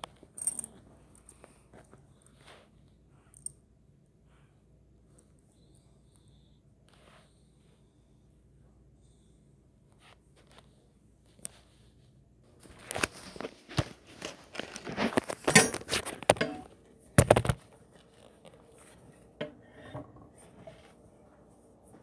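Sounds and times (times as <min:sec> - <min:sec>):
device handling knocks and clicks: 0:15.4 - 0:17.6.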